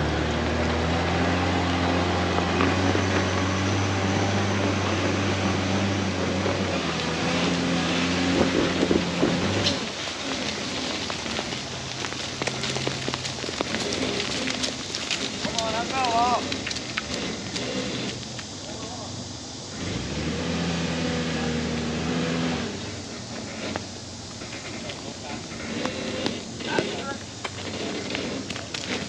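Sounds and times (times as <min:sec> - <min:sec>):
engine running at low revs: 0:00.0 - 0:29.0.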